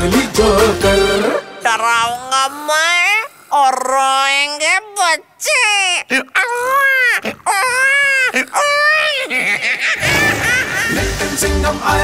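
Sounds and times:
high-pitched voice wailing: 1.6s - 9.4s.

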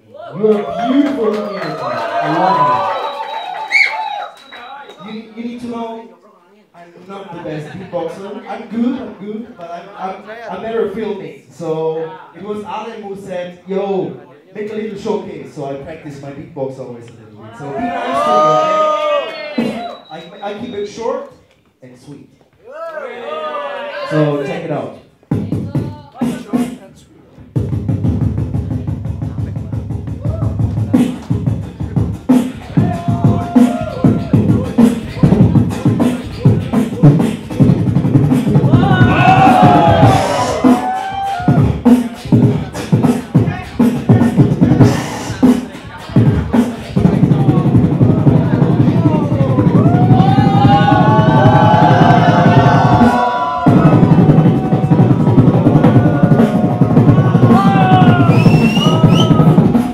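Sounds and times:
beatboxing bass pulses: 19.6s - 21.0s, 25.2s - 59.9s.

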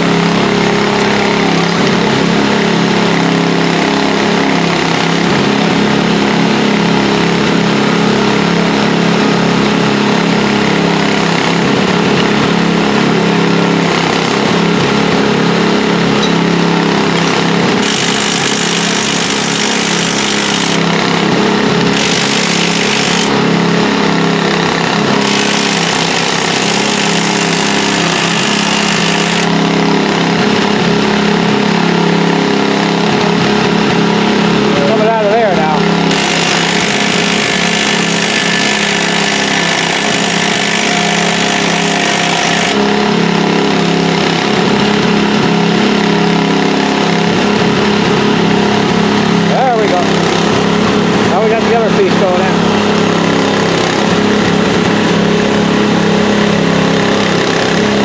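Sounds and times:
machinery engine running: 0.0s - 58.0s.

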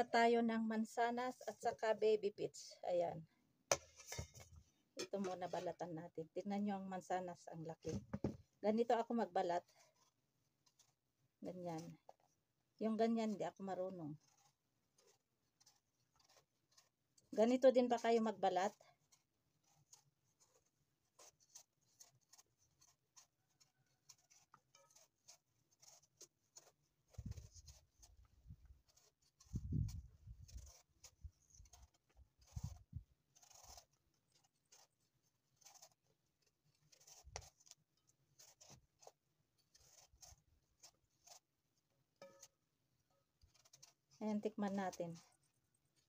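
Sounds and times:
knife cutting apple peel: 5.0s - 46.0s.

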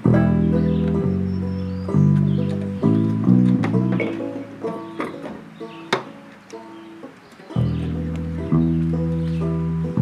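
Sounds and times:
deep bass layer: 0.0s - 4.7s, 7.6s - 10.0s
looped plucked banjo accompaniment: 0.0s - 10.0s.

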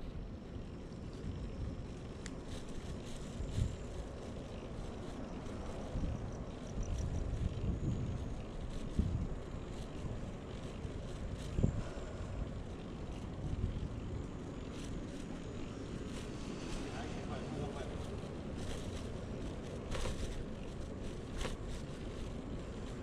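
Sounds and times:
bicycle bumps and clicks: 0.0s - 23.0s
bicycle road noise: 0.0s - 23.0s
wind rumbling on microphone: 0.0s - 23.0s.

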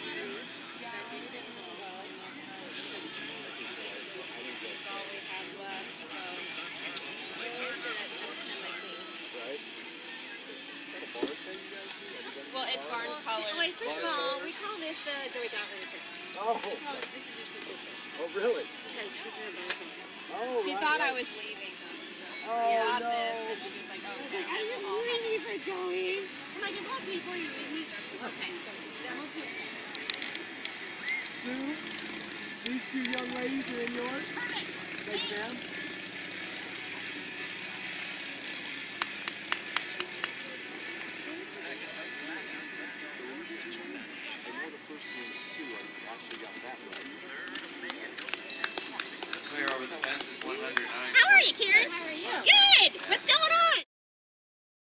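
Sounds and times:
faint background music: 0.0s - 53.8s
outdoor ambience: 21.4s - 53.8s
distant voices: 23.6s - 53.2s.

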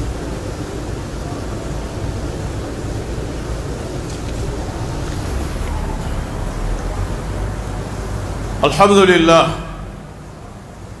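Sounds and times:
low rumbling crowd room tone: 0.0s - 11.0s.

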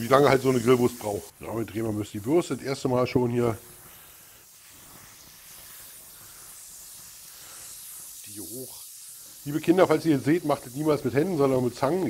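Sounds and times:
sausages sizzling on a grill: 0.0s - 12.0s.

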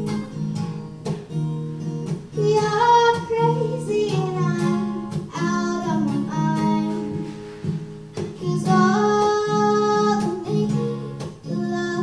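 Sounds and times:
acoustic guitar strumming: 0.0s - 12.0s
girl singing: 2.3s - 12.0s.

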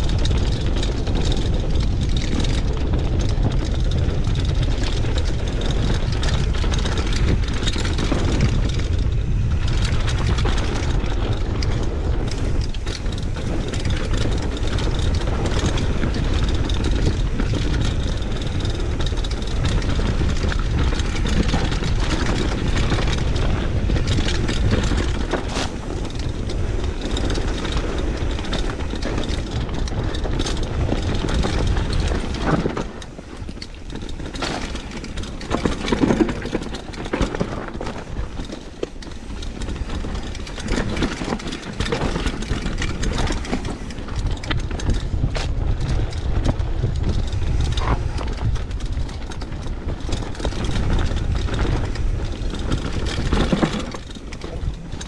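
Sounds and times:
bike rattling over bumps: 0.0s - 55.0s
wind buffeting microphone: 0.0s - 55.0s
tyres on dirt: 0.1s - 55.0s.

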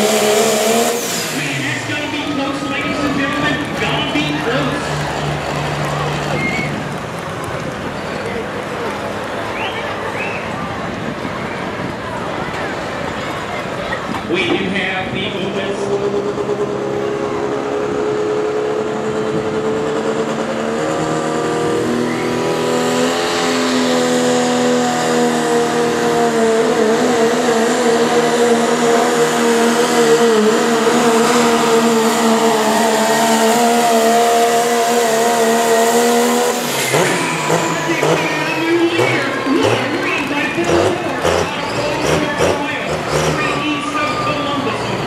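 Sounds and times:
diesel truck engine at full throttle: 0.0s - 45.0s.

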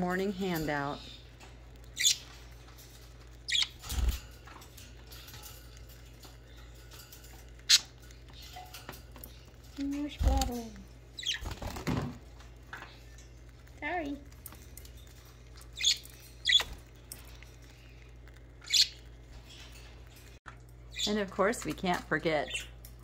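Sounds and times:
wings fluttering: 0.0s - 21.1s
budgerigars chirping: 2.0s - 2.4s, 3.5s - 4.1s, 11.2s - 11.6s, 15.6s - 16.8s, 18.6s - 19.7s.

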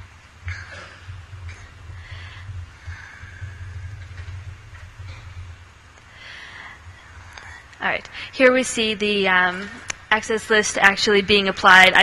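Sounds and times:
low steady hum with hiss: 0.0s - 12.0s.

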